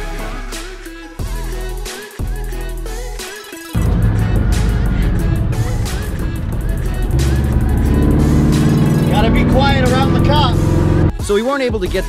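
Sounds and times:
music with vocals: 0.0s - 12.0s
car engine from inside cabin: 3.8s - 11.1s.

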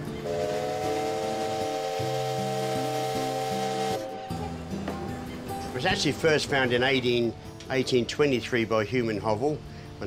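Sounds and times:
steam whistle chord: 0.0s - 4.8s
background music: 0.0s - 10.0s
steam hissing: 0.2s - 4.1s.

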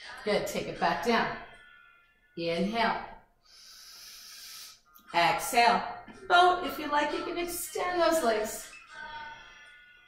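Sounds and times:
woman inhaling deeply: 3.4s - 4.8s.

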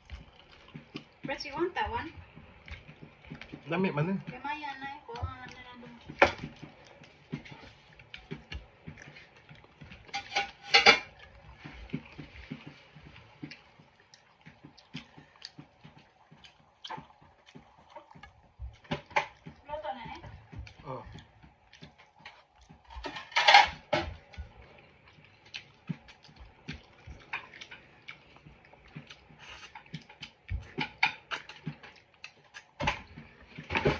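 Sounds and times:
chewing and mouth sounds: 0.0s - 33.9s.

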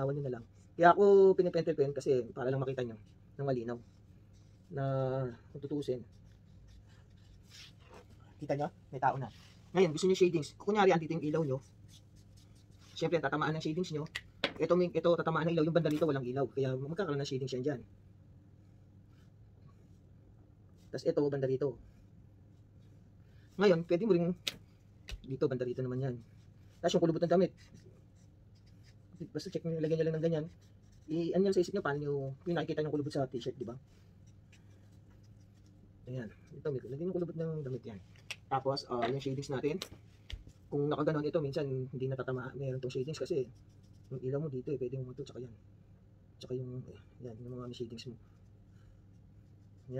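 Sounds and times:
marker scratching on paper: 1.7s - 14.0s, 25.6s - 37.8s, 42.4s - 45.3s, 47.5s - 49.9s.

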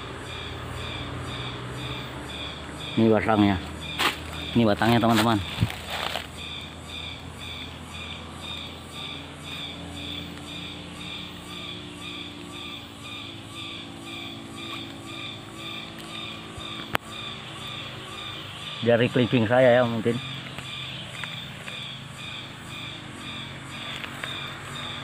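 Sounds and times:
high pulsing animal call: 0.0s - 25.0s.

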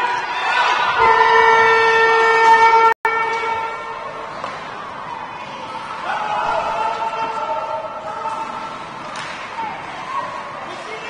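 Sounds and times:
game horn blast: 1.0s - 4.0s.

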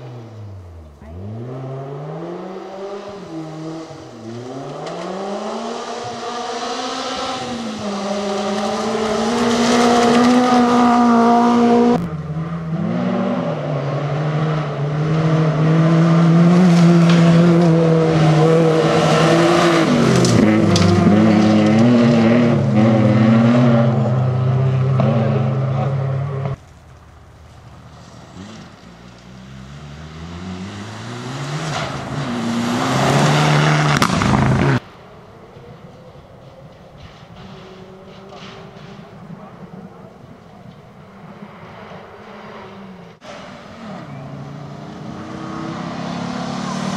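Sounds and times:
rally car engines revving on gravel: 0.0s - 34.9s, 35.6s - 46.9s.

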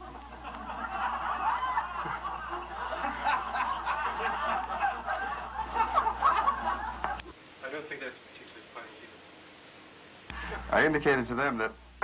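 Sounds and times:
audience laughing: 0.0s - 7.2s.

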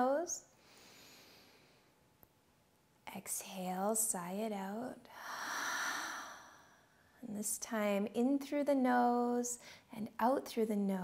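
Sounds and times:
woman exhaling a long breath: 5.2s - 6.9s.

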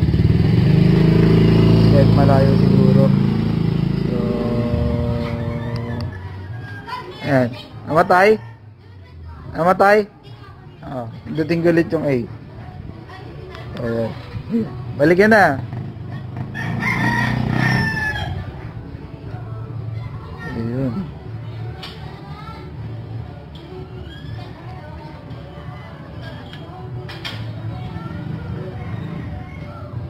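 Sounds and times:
scooter engine riding away: 0.0s - 6.5s, 15.6s - 18.8s
rooster crowing: 4.1s - 7.0s, 16.5s - 18.5s.

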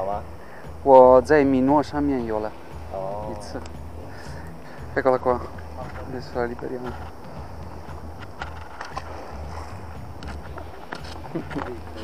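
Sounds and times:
low outdoor rumble: 1.3s - 12.0s.

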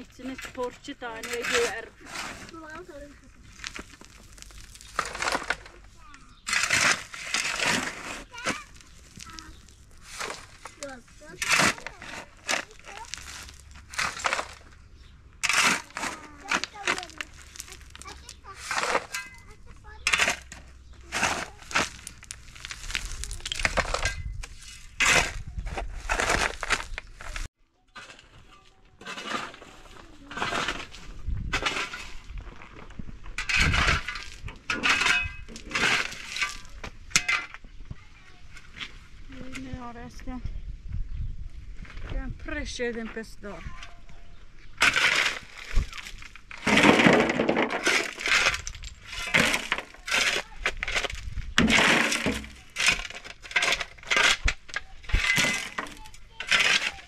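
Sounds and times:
shovel scraping rocky gravel: 0.0s - 37.6s, 44.7s - 57.0s.

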